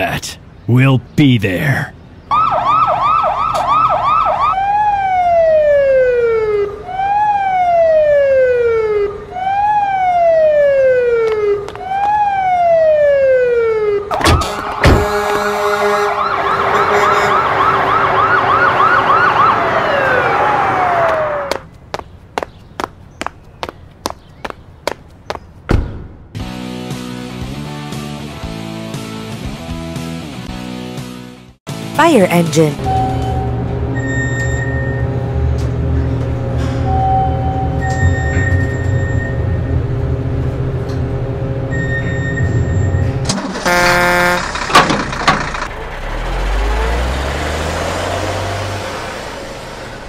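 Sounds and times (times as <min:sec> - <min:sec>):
ambulance siren: 0:02.3 - 0:21.6.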